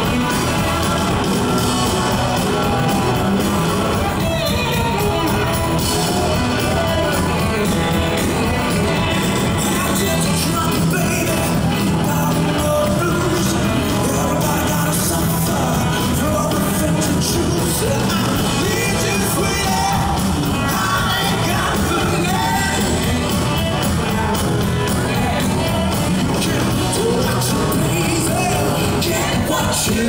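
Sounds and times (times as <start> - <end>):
blues-rock band playing: 0.0 - 30.0
drums: 0.0 - 30.0
electric guitars: 0.0 - 30.0
man singing lead: 0.0 - 30.0.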